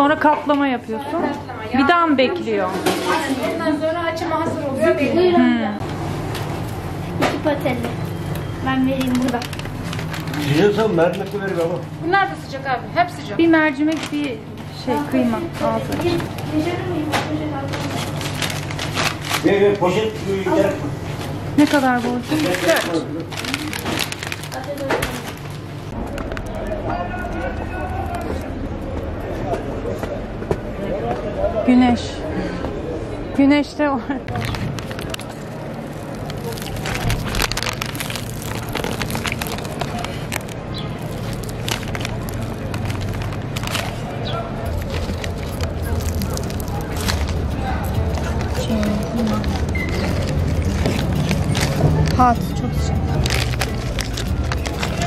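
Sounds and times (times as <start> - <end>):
outdoor background noise: 0.0 - 55.0
crackling rustles of pastries: 5.8 - 29.6, 34.0 - 55.0
paper bag rustling: 7.6 - 11.8, 13.7 - 28.5, 34.3 - 55.0
voices talking: 19.4 - 55.0.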